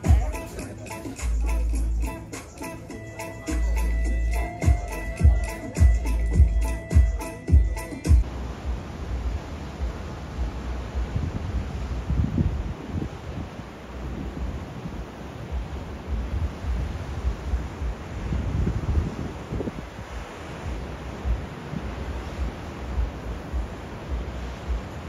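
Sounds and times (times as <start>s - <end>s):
surf breaking on shore: 8.3s - 25.0s
wind gusting on microphone: 8.6s - 25.0s.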